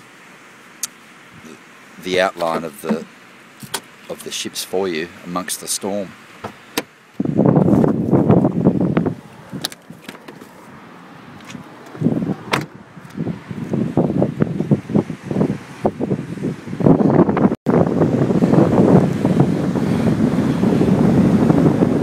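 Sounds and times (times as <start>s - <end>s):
storm wind buffeting microphone: 7.2s - 9.6s, 12.0s - 22.0s.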